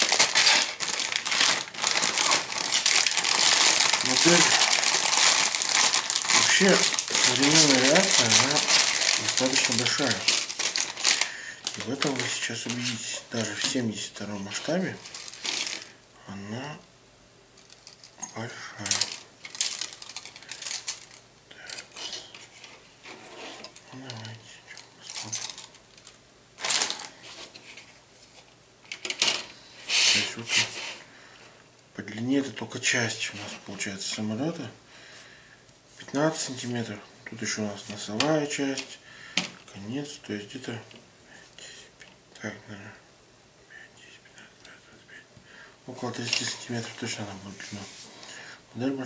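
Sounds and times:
plastic sprues clicking and rattling: 0.0s - 12.3s, 28.9s - 29.5s
plastic bag crinkling: 0.0s - 13.9s, 14.5s - 16.0s, 17.6s - 22.7s, 23.6s - 29.5s.

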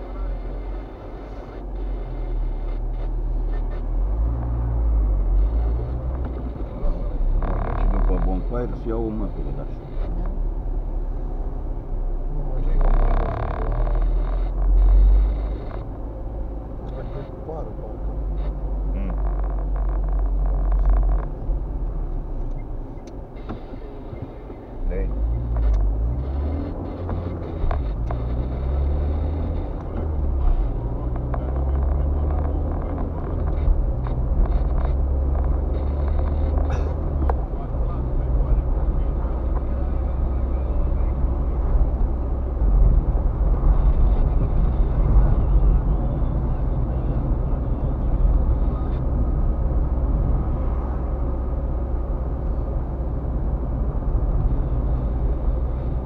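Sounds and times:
car engine accelerating: 0.0s - 56.0s
road noise inside car: 0.0s - 56.0s.

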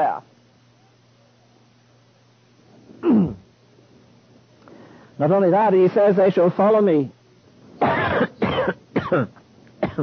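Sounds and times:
man clearing his throat: 3.0s - 3.4s, 7.8s - 10.0s
man coughing: 3.0s - 3.4s, 7.8s - 10.0s.

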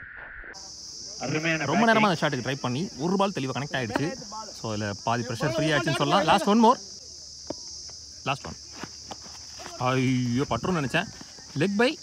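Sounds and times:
high-pitched insect drone: 0.5s - 12.0s.

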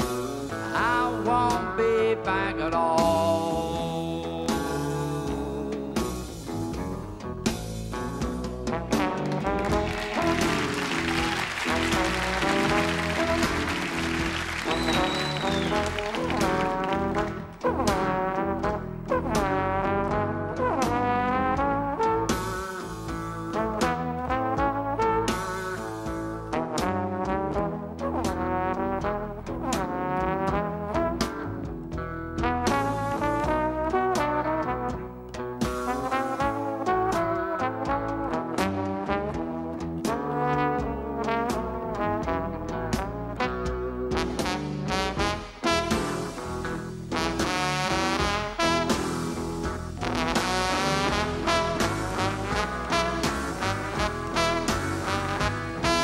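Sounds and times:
trad jazz band: 0.0s - 56.0s
trombone solo sliding: 8.7s - 31.4s, 35.8s - 56.0s.

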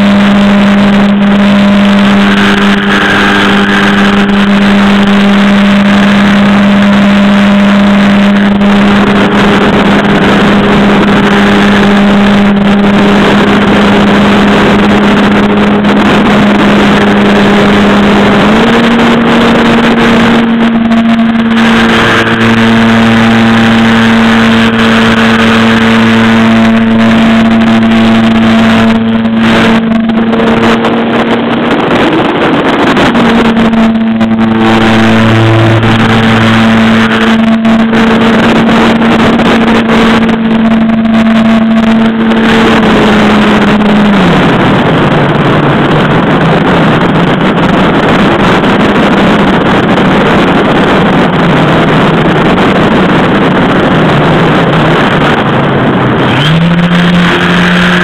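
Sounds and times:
electric motor and propeller whine: 0.0s - 58.0s
wind noise on microphone: 0.0s - 58.0s.

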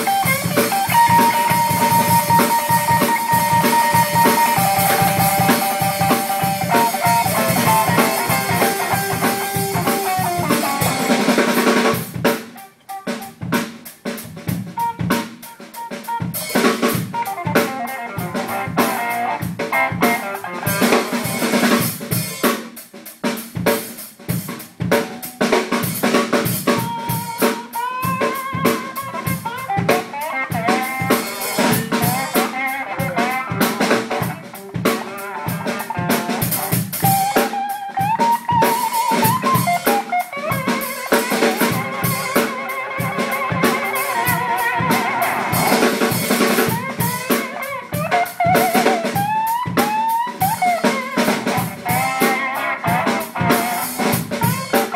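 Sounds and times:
sliding guitar lead lines: 0.0s - 22.4s, 24.6s - 54.9s
live rock band playing: 0.0s - 54.9s.

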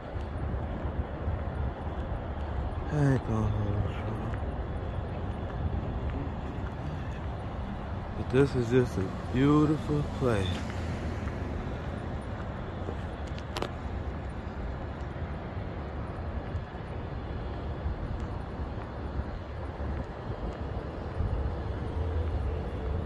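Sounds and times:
road noise: 0.0s - 23.0s
wind: 0.0s - 23.0s.

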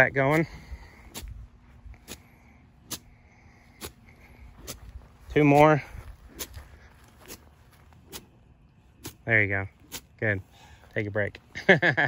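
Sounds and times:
golf club swishing through grass: 3.7s - 8.4s.

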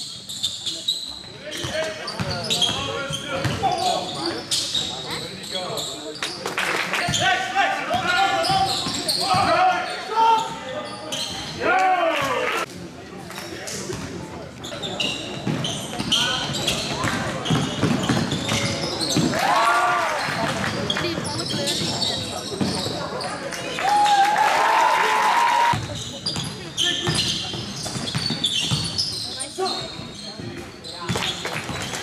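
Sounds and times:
basketball bouncing on court: 15.4s - 19.3s, 25.7s - 29.0s.

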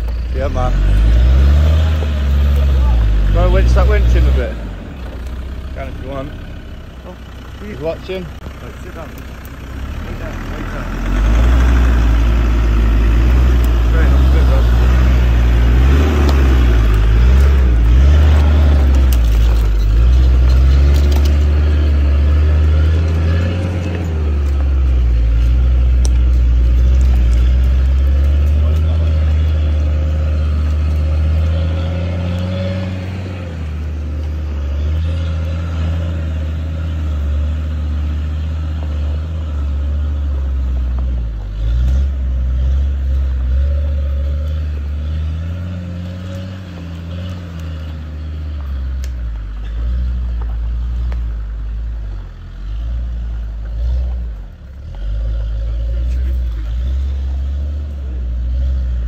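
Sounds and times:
diesel engine working under load: 0.0s - 59.0s.

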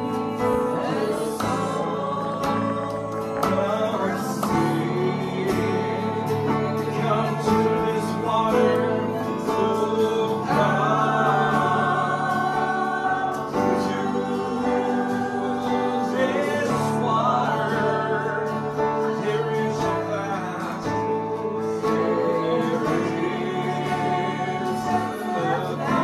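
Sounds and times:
acoustic guitar: 0.0s - 26.0s
group singing gospel song: 0.0s - 26.0s.

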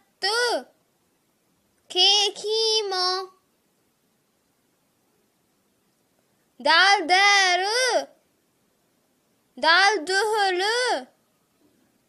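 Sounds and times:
child chanting: 0.0s - 0.8s, 1.9s - 3.5s, 6.6s - 8.2s, 9.6s - 11.2s.

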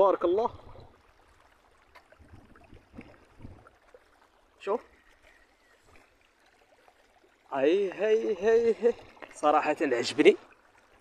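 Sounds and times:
water flowing over concrete: 0.0s - 11.0s.

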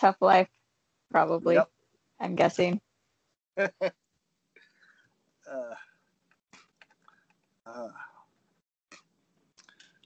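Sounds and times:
person saying uh: 3.6s - 3.9s, 5.5s - 5.8s.

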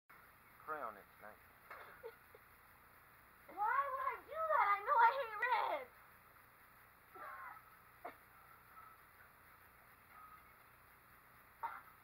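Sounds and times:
high-pitched wavering vocal cry: 7.1s - 8.2s.

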